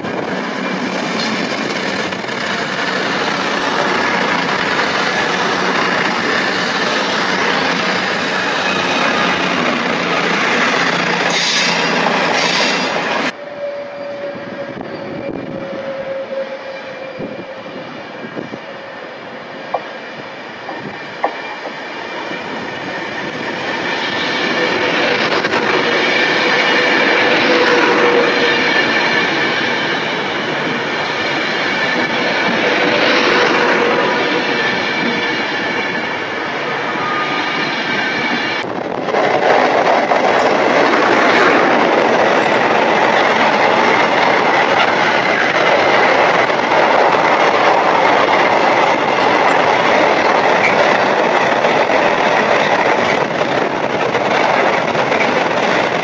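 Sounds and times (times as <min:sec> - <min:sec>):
electric train passing at speed: 0:00.0 - 0:56.0
freight train wheels on rails: 0:00.0 - 0:56.0.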